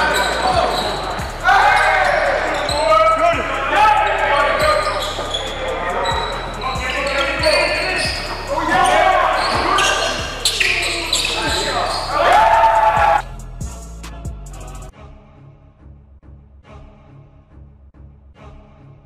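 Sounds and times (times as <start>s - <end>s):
players shouting indistinctly: 0.0s - 13.3s.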